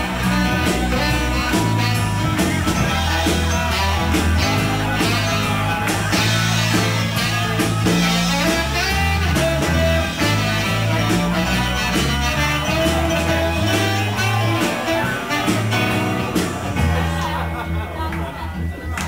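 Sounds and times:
live blues rock band: 0.0 - 19.0.

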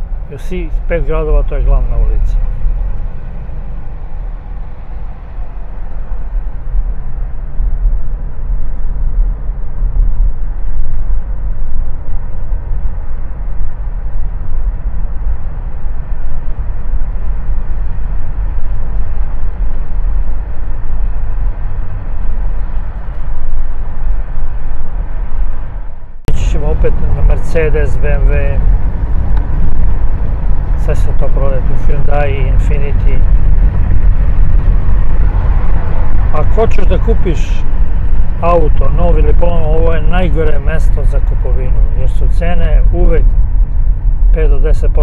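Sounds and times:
car road and engine rumble: 0.0 - 45.0.

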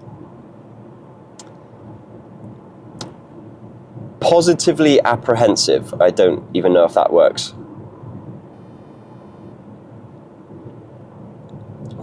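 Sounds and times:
car road noise hum: 0.0 - 12.0.

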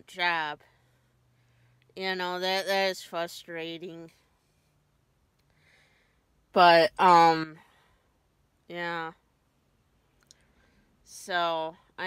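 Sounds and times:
person speaking: 6.6 - 7.6.

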